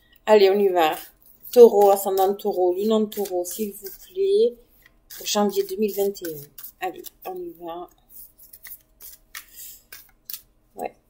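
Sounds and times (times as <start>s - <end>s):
cards being shuffled: 5.1s - 7.4s, 8.1s - 10.5s.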